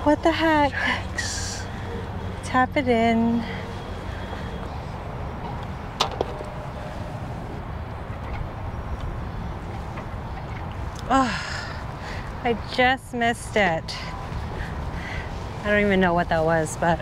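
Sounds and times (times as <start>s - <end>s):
outdoor background noise: 0.0s - 17.0s
putter striking golf ball: 6.0s - 6.7s.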